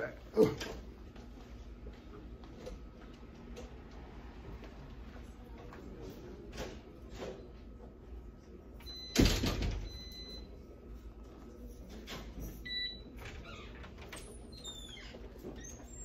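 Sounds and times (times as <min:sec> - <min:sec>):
automatic door swinging open: 0:09.1 - 0:10.0.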